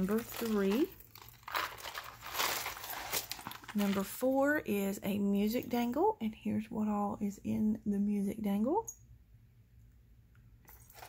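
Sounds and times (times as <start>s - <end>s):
paper and packaging rustling: 0.0s - 4.4s, 10.7s - 11.0s.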